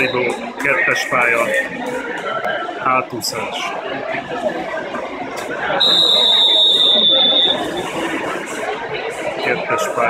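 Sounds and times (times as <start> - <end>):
crowd chatter: 0.0 - 10.0
long whistle blast: 5.8 - 7.7.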